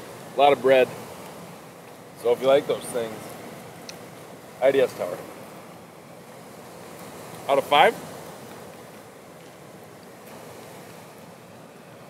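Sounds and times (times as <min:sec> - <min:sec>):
river water flowing: 0:00.0 - 0:12.0
wind: 0:00.0 - 0:12.0.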